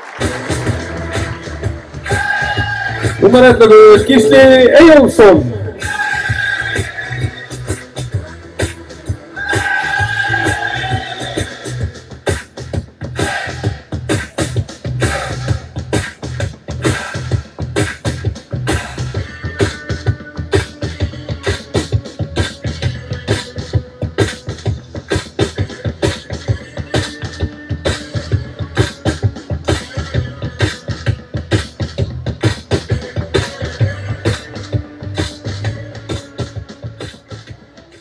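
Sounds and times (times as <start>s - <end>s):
fast music with heavy bass: 0.0s - 38.0s.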